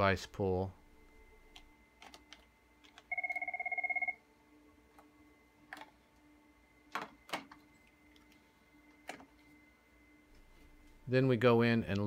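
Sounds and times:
desk phone ringing: 0:03.1 - 0:04.2.

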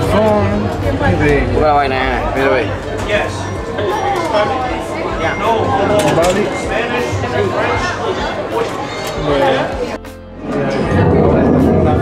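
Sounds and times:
voices chattering indoors: 0:00.0 - 0:12.0.

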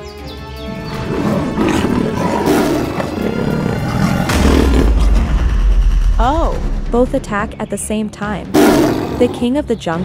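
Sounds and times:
background music: 0:00.0 - 0:10.0
big cats roaring and growling: 0:00.7 - 0:05.7, 0:08.5 - 0:09.5
heavy low rumble: 0:03.2 - 0:07.8.

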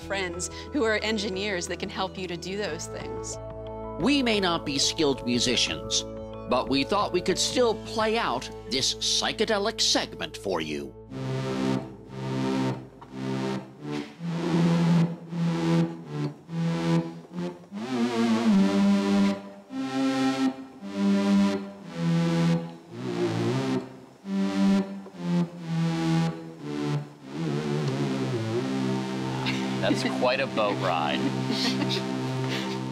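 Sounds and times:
synthesizer notes: 0:10.8 - 0:32.9.

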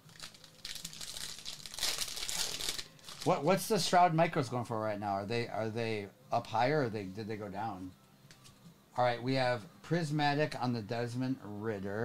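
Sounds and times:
foil wrapper crinkling: 0:00.0 - 0:03.4
foil wrapper tearing: 0:00.0 - 0:03.4.

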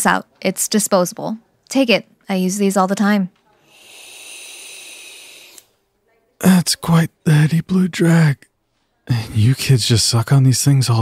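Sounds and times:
airy hiss of vape drag: 0:03.6 - 0:05.8.

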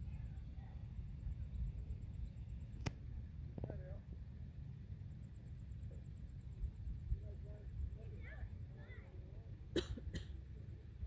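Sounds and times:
faint chirping calls: 0:00.0 - 0:03.3
low background rumble: 0:00.0 - 0:11.0
sharp cough-like bursts: 0:09.8 - 0:10.4.

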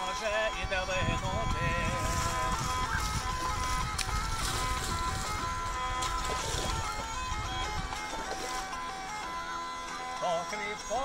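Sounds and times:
hurdy-gurdy drone and melody: 0:00.0 - 0:11.0.

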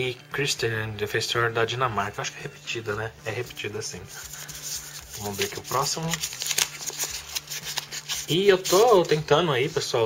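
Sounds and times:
wrapper crinkling and tearing: 0:04.3 - 0:09.2.

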